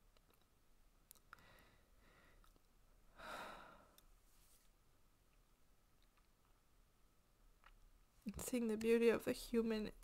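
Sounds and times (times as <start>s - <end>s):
faint breath: 1.3s - 4.6s
woman sighing: 3.2s - 4.0s.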